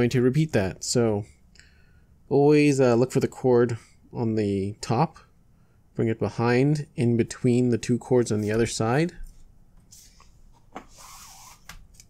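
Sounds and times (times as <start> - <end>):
cord rubbing and sliding: 8.4 - 12.0.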